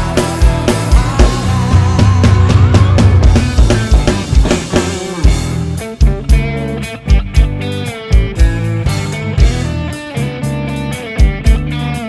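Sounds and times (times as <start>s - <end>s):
electronic drum kit: 0.0s - 12.0s
lead electric guitar: 0.0s - 12.0s
rock band playing: 0.0s - 12.0s.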